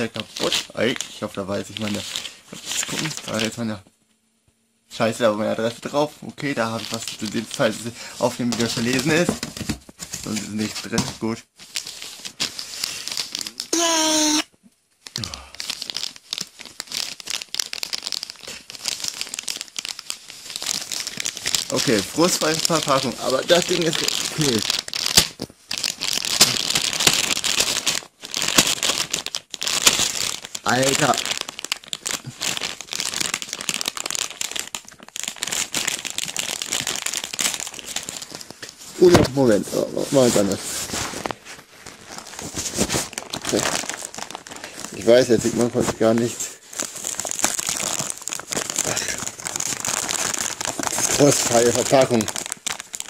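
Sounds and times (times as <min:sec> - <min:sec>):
paper packaging crinkling: 0:00.0 - 0:03.6, 0:06.5 - 0:11.0, 0:11.6 - 0:14.4, 0:15.0 - 0:53.0.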